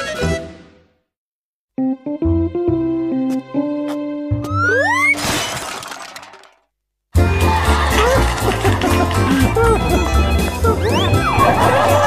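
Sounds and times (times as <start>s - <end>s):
cartoon shattering crash: 5.0s - 6.6s.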